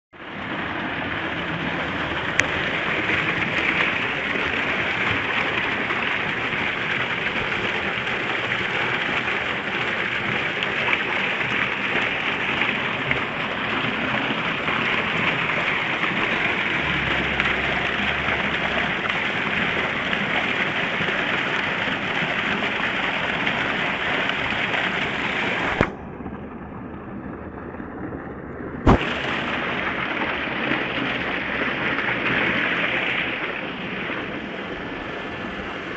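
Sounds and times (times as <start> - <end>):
water gushing into tank: 0.2 - 26.6, 28.8 - 35.9
sharp knock: 28.9 - 29.1.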